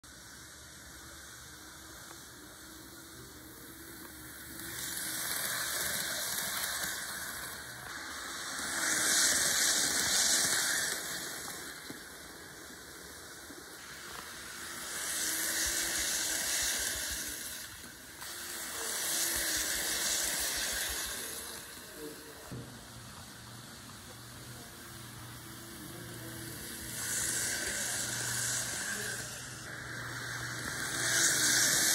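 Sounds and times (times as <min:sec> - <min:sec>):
model train whirring on rails: 0:00.0 - 0:31.9.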